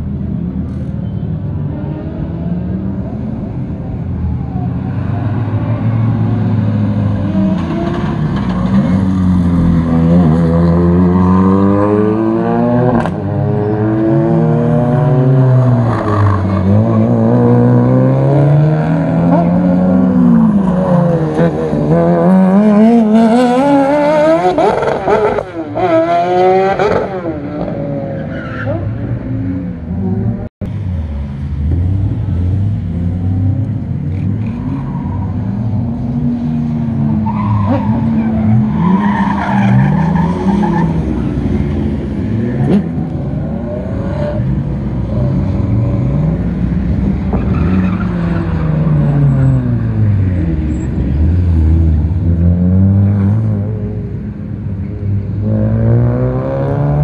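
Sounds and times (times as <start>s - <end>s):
cars passing by: 0.0s - 57.0s
racing car engines: 0.0s - 57.0s
engine upshifts: 0.4s - 57.0s.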